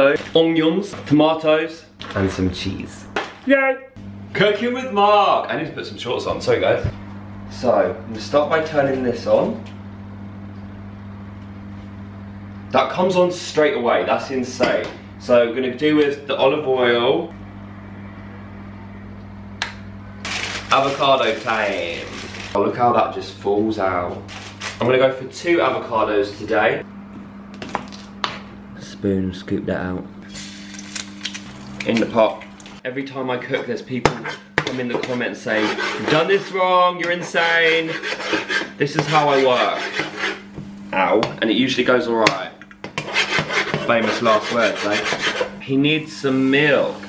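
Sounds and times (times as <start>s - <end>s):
low electrical hum: 0.0s - 47.0s.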